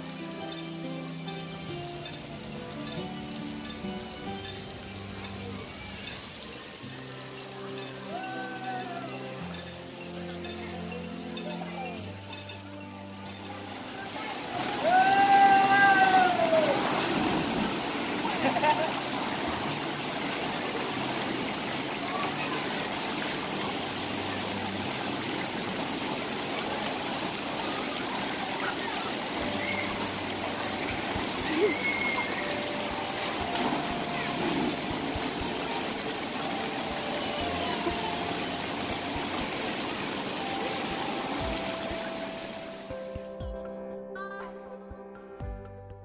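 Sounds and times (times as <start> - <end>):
faint music: 0.0 - 46.0
water splashing into pool: 13.4 - 42.9
water rushing down a slide: 13.7 - 42.9.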